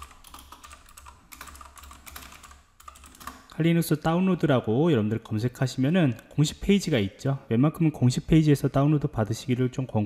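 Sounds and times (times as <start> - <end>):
typing on computer keyboard: 0.0 - 3.5.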